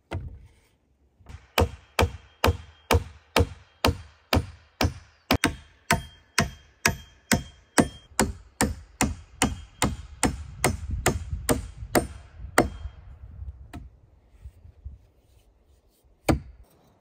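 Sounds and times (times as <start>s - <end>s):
hand axe striking a log: 1.3s - 12.8s, 16.3s - 16.5s.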